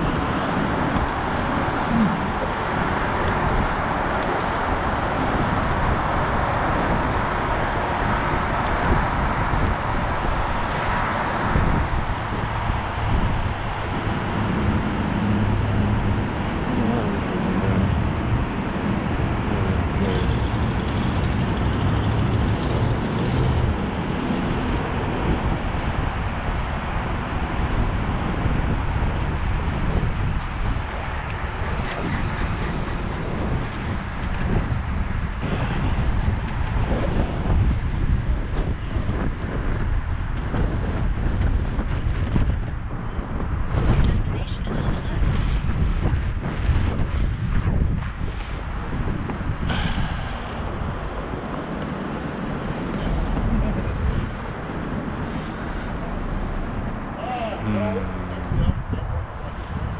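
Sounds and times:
low vehicle hum: 0:00.0 - 0:59.9
road traffic: 0:00.0 - 0:59.9
wind buffeting microphone: 0:00.0 - 0:59.9.

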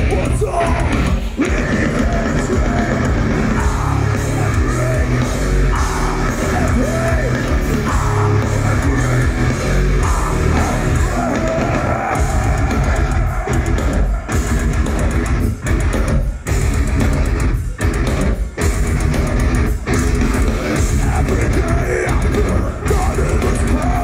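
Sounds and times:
heavy metal band playing live: 0:00.0 - 0:24.0.

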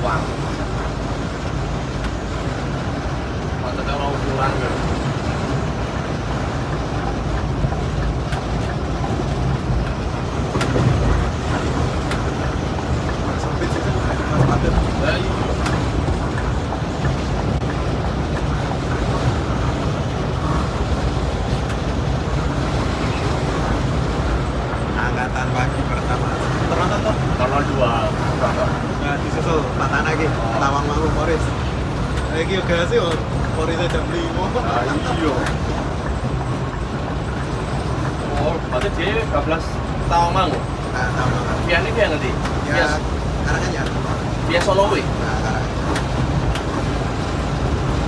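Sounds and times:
coach engine and road drone: 0:00.0 - 0:48.0.

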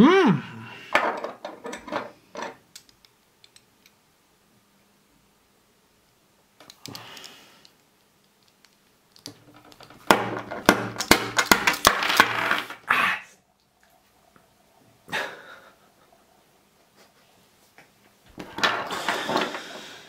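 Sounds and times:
loud vocal outburst: 0:00.0 - 0:00.8, 0:12.8 - 0:13.4
metal puzzle pieces clacking: 0:01.0 - 0:04.0, 0:07.7 - 0:12.7.

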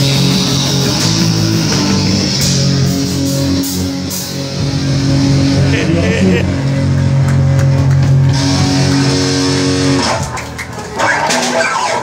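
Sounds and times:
distorted electric guitars chord: 0:00.0 - 0:10.2.

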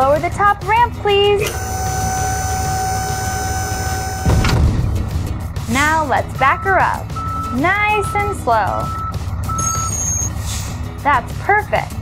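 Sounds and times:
truck reversing alarm beeping: 0:01.4 - 0:04.6, 0:06.4 - 0:10.5.

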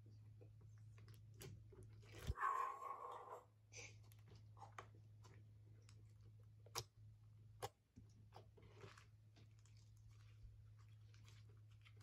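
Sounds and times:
low steady hum: 0:00.0 - 0:12.0
slime crackling softly: 0:03.7 - 0:12.0.

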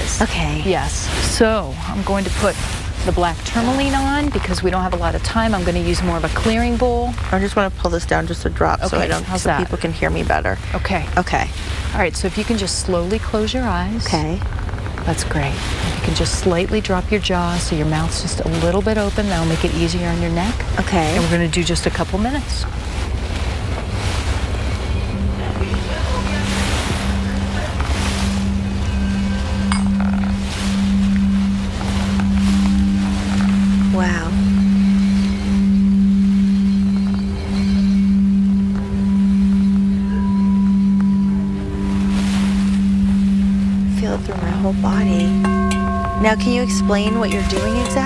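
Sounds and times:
low singing bowl tone: 0:24.0 - 0:48.0
higher singing bowl tone: 0:24.7 - 0:48.0.

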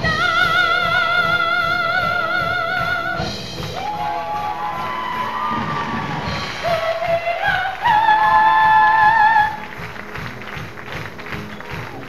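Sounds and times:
steady drum beat: 0:00.0 - 0:12.0
crowd-like shouting: 0:03.7 - 0:06.6.

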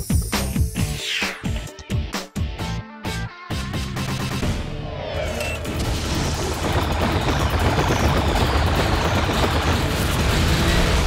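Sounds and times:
film soundtrack music: 0:00.0 - 0:06.9
explosions and fire roaring: 0:05.0 - 0:11.0.

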